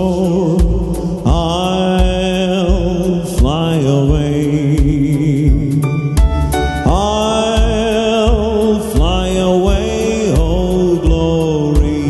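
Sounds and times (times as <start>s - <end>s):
backing track with low beat: 0.0s - 12.0s
man singing into a microphone: 0.0s - 12.0s.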